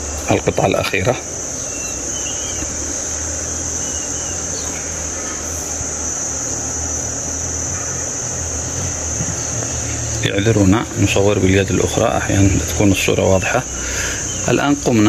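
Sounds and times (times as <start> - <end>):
high-pitched insect trill: 0.0 - 15.0
man speaking: 0.3 - 1.3, 10.2 - 13.7.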